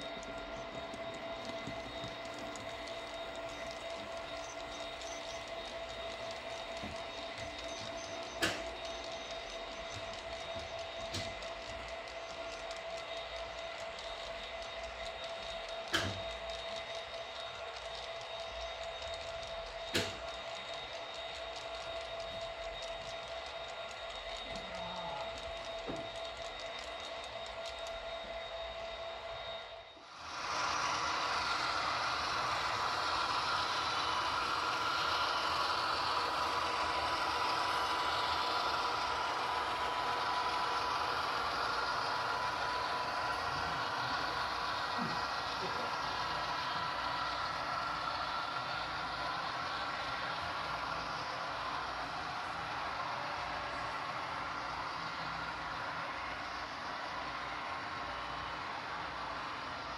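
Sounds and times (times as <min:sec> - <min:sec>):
model train running: 0:00.0 - 0:59.9
thin whine: 0:00.0 - 0:59.9.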